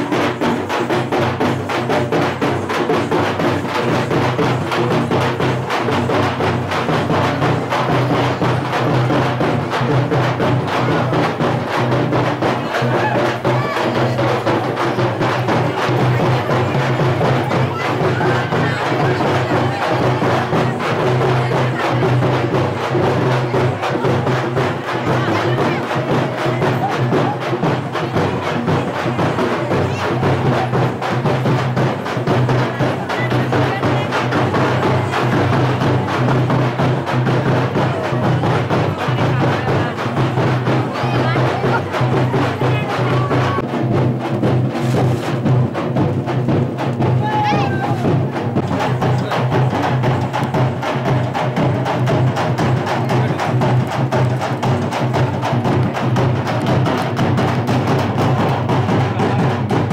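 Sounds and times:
fast drum beat: 0.0s - 59.9s.

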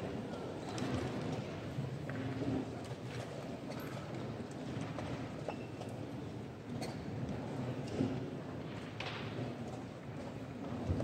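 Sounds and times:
background hum of playing hall: 0.0s - 11.0s.

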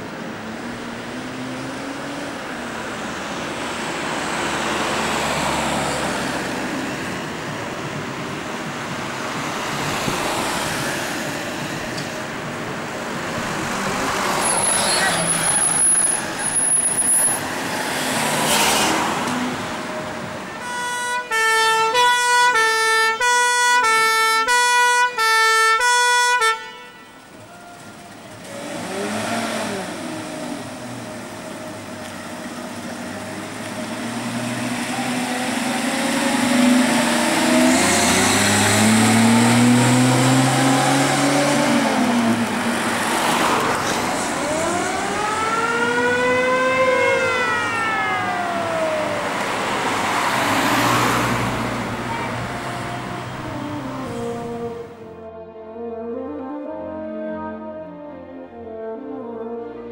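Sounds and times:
traffic noise: 0.0s - 59.9s
two-tone fire engine horn: 20.5s - 28.7s, 52.0s - 59.9s
engine revving: 28.4s - 30.9s, 33.2s - 47.6s.

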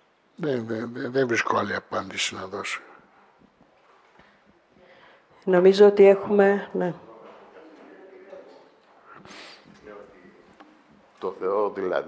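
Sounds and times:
faint breath in: 4.2s - 5.4s, 9.2s - 9.8s.

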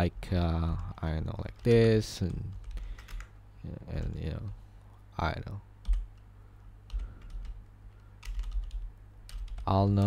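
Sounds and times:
steady low hum: 0.0s - 10.0s
keyboard keystrokes: 6.9s - 10.0s.

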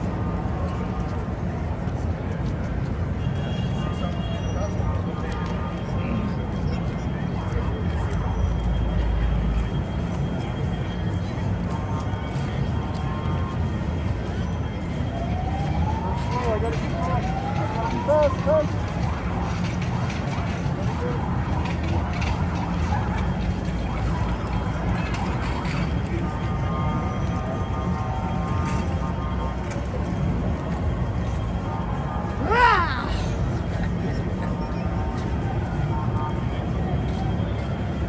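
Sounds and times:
crowd chatter: 0.0s - 38.0s
rising siren-like glides: 14.3s - 18.6s.

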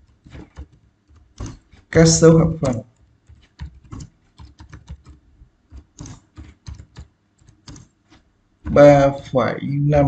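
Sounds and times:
keyboard typing: 0.0s - 9.2s.

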